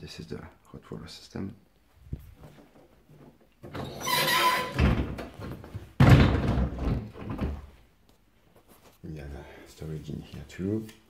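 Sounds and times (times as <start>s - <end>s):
cupboard door scraping: 3.7s - 5.7s
cupboard door thumping shut: 6.0s - 7.7s.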